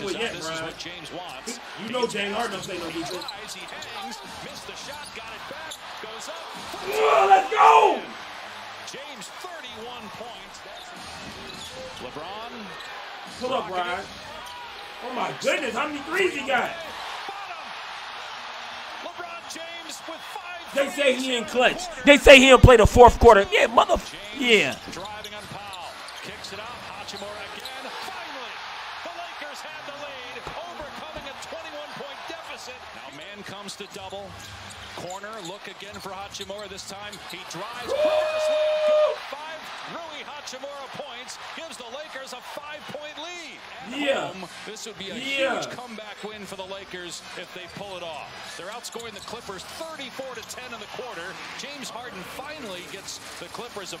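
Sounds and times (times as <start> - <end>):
crowd noise: 0.0 - 9.3, 12.7 - 33.5, 35.8 - 46.5.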